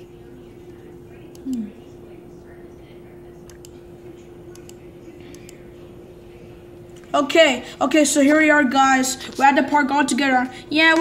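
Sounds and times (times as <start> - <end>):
low electrical hum with hiss: 0.0 - 11.0
soft sharp clicks: 3.4 - 3.8, 4.5 - 5.6.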